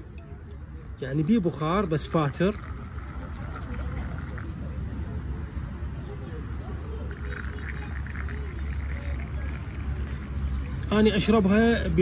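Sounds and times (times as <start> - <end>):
low steady rumble: 0.0 - 12.0
water pouring into glass: 0.6 - 4.6, 7.1 - 11.7.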